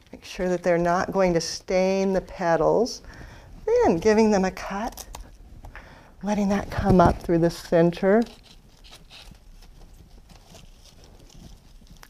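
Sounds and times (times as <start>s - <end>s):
rustling of foliage: 8.0s - 12.0s.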